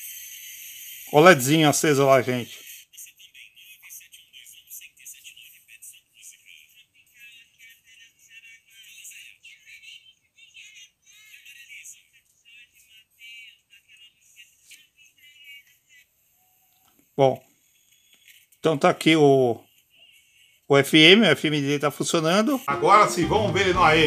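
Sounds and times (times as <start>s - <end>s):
tinny radio music with voice: 0.0s - 24.0s.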